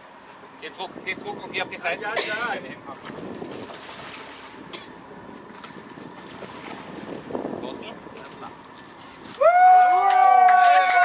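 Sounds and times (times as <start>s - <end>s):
sea noise: 0.0s - 11.0s
wind: 0.0s - 11.0s
person yelling: 9.4s - 11.0s.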